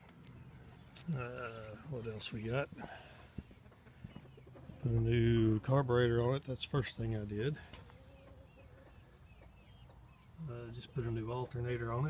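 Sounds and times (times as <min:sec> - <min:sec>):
distant bird calls: 0:00.0 - 0:12.0.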